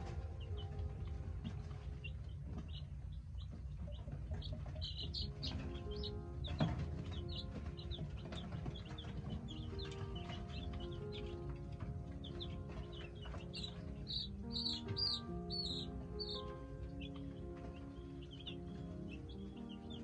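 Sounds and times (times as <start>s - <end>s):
baby chicks peeping: 0.0s - 20.0s
soft background music: 0.0s - 20.0s.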